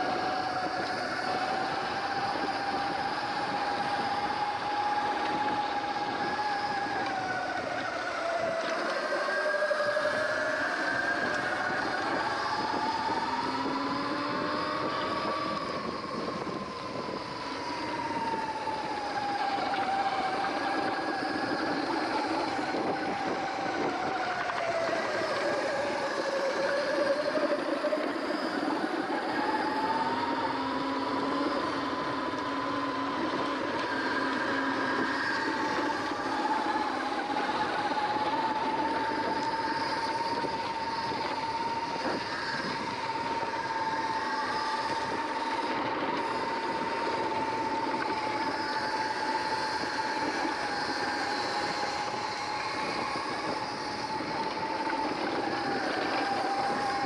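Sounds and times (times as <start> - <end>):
electric bike motor whining: 0.0 - 57.0
tyre and wind noise: 0.0 - 57.0.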